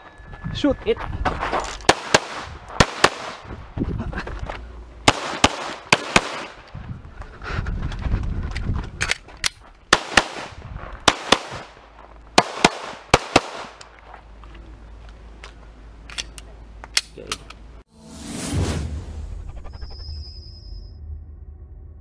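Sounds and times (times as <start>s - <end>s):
pistol shots: 1.9s - 3.4s, 5.1s - 6.6s, 9.9s - 11.8s, 12.4s - 13.9s
low rumbling movement noise: 3.4s - 5.1s, 6.5s - 9.9s, 10.5s - 12.4s.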